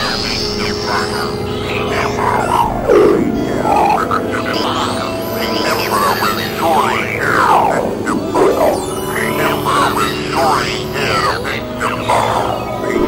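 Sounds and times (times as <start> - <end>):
downward synth sweep: 0.0 - 13.0
swooping synth tones: 0.0 - 13.0
synthesizer drones: 0.0 - 13.0.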